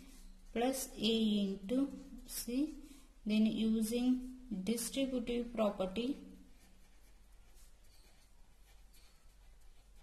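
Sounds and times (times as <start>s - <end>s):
person speaking: 0.4s - 6.7s
felt-tip pen writing on paper: 6.6s - 10.0s.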